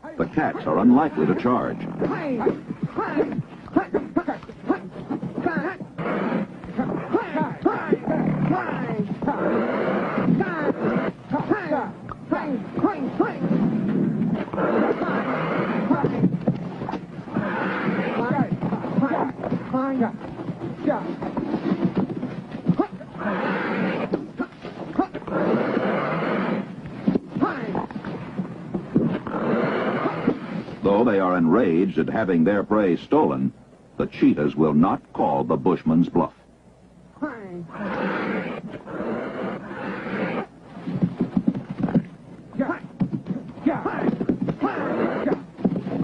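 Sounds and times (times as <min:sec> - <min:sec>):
cheetahs snarling and yowling: 0:00.4 - 0:30.9, 0:37.7 - 0:42.1, 0:42.7 - 0:46.0.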